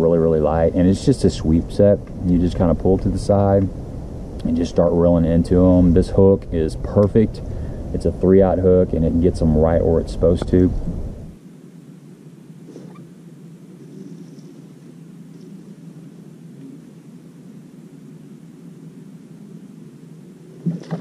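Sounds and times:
wind and water rumble: 0.0s - 11.4s.

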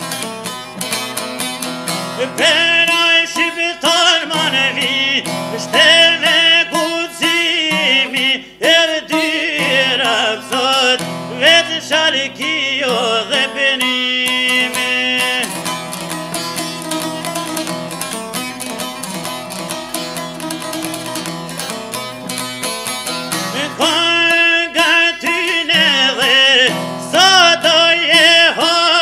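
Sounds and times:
plucked lute strumming: 0.0s - 29.0s
man singing: 2.1s - 16.6s, 23.3s - 29.0s.

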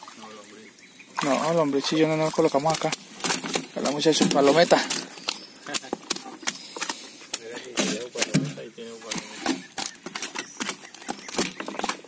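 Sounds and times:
fish flopping on boat floor: 2.1s - 12.0s.

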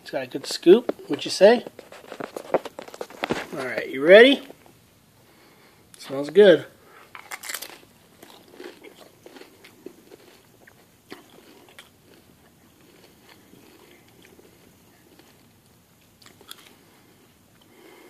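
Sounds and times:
chewing and crunching food: 0.3s - 3.8s, 6.9s - 18.0s.

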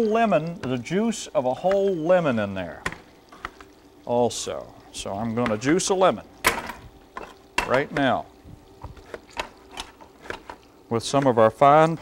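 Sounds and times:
kitchen items clicking and knocking: 6.4s - 8.2s, 8.8s - 11.3s.

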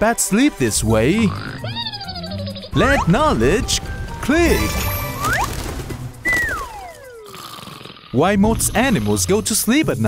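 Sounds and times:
whistle tone gliding down: 6.2s - 7.2s.

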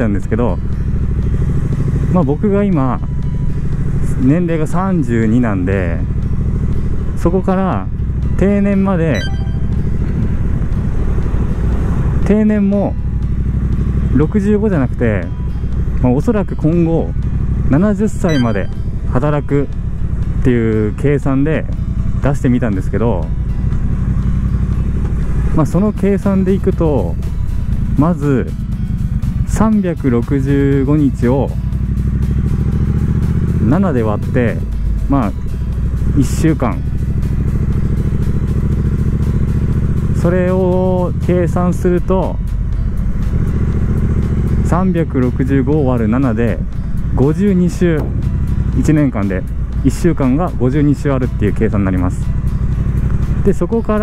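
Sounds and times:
motorcycle engine running: 0.0s - 54.0s
road and wind noise: 0.0s - 54.0s
high ringing tone: 9.1s - 10.1s, 18.3s - 19.1s.

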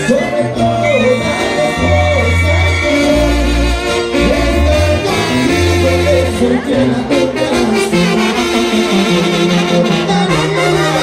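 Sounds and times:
brass band playing: 0.0s - 11.0s
people singing: 0.0s - 11.0s
tuba low notes: 0.0s - 11.0s.

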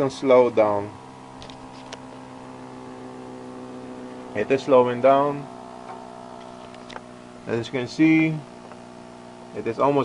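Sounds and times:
electric motor humming: 0.4s - 10.0s.

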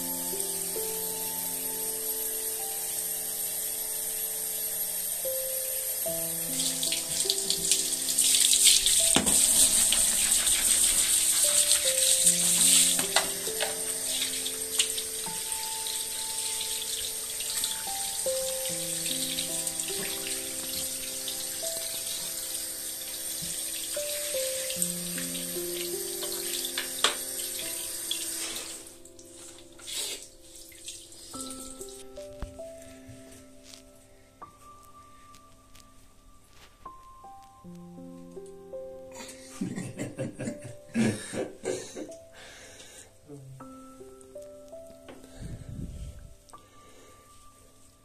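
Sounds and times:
water spraying from shower head: 0.0s - 32.2s
soft background music: 0.0s - 48.0s
sharp knock: 9.1s - 10.0s.

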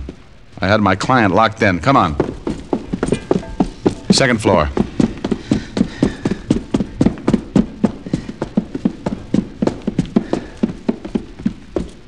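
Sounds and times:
rapid footsteps up stairs: 1.8s - 12.0s.

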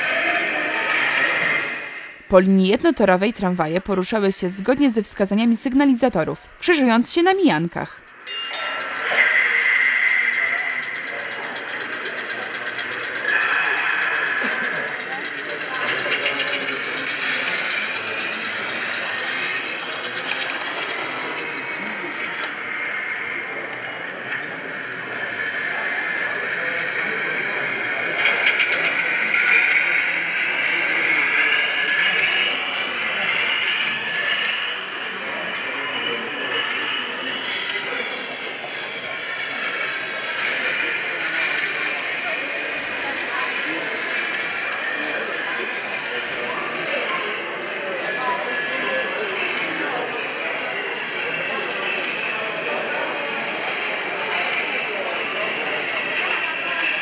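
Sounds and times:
model tram running sounds: 0.0s - 57.0s
murmur of visitors' voices: 0.0s - 57.0s.

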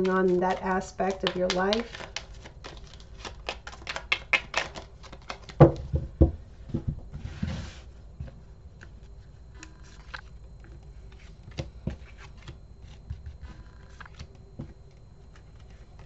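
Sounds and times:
cards laid out clicking: 0.0s - 5.6s
cards shuffling: 0.0s - 5.8s, 9.6s - 16.0s.

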